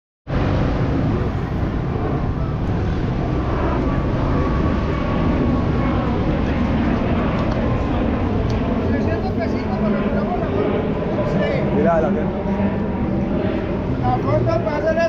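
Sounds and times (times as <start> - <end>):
traffic noise: 0.3 - 15.0
voices of passers-by: 0.4 - 15.0.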